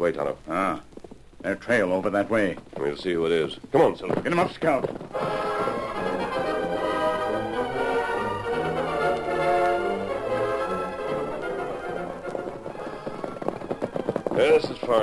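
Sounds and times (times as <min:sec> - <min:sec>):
orchestral music with brass: 0:05.1 - 0:14.6.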